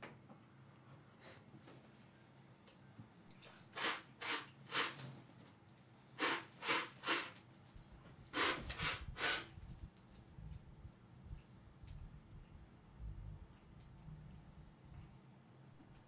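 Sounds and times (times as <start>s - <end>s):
person spitting spray from mouth: 3.4s - 5.1s, 6.2s - 7.4s, 8.4s - 9.5s.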